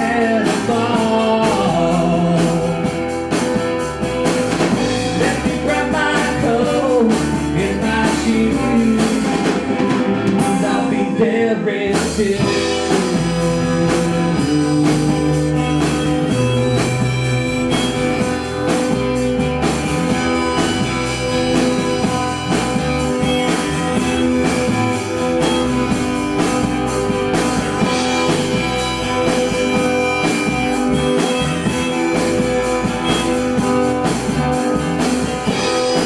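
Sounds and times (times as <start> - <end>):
live rock band playing: 0.0 - 36.0.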